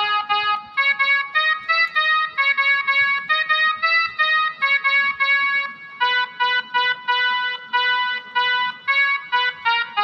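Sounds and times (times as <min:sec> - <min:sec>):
mini keyboard melody: 0:00.0 - 0:10.0.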